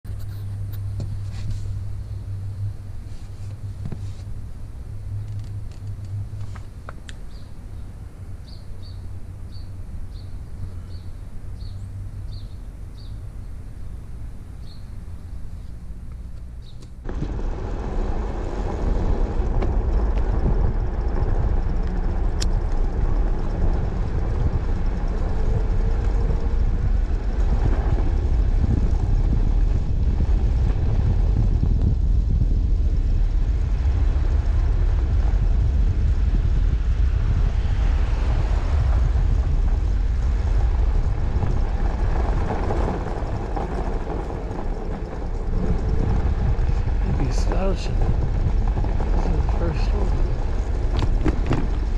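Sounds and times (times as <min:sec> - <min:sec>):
wind buffeting microphone: 0:00.1 - 0:51.9
tyres rolling over snow: 0:15.4 - 0:51.9.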